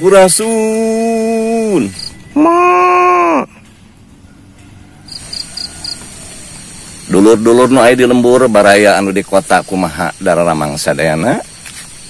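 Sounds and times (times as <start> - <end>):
insect chirping: 0.0 - 12.0
faint high whine: 4.5 - 12.0.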